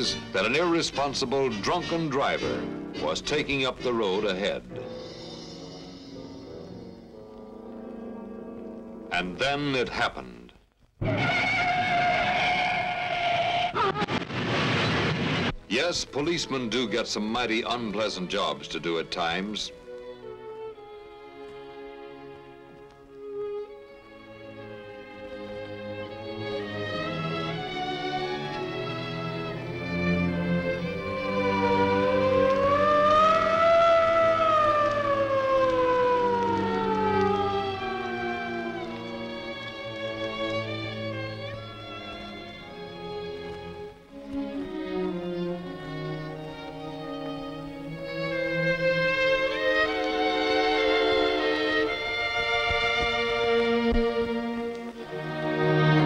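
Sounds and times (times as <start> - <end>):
mechanical siren wail: 30.9 - 39.6, 49.4 - 52.8.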